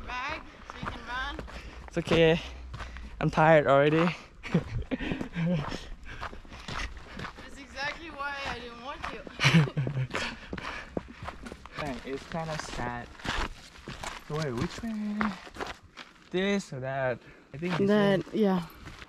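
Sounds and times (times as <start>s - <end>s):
footsteps on dirt trail: 0.0s - 16.4s, 17.2s - 19.0s
person's voice: 17.6s - 18.7s.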